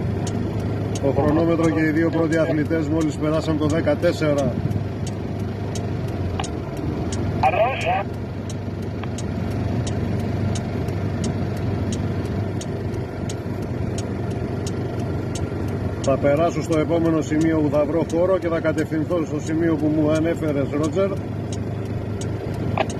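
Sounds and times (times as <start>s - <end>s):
car engine and road noise: 0.0s - 22.9s
light regular ticking: 0.0s - 22.9s
person speaking: 1.0s - 4.6s, 7.3s - 8.2s.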